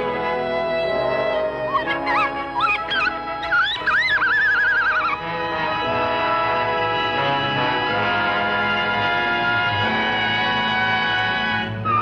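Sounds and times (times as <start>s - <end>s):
cartoon orchestral music: 0.0s - 12.0s
cartoon bird cry: 1.8s - 5.2s.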